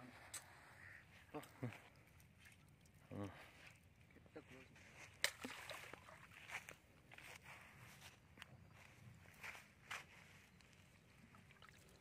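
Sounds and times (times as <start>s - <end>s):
faint water splashing: 0.0s - 8.0s, 11.1s - 12.0s.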